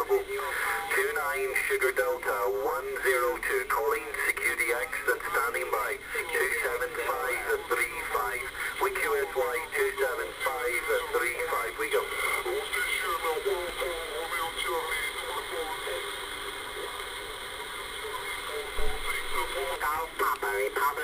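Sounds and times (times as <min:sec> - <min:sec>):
narrow radio speech: 0:00.0 - 0:16.2, 0:18.0 - 0:21.0
steady radio static: 0:00.0 - 0:21.0.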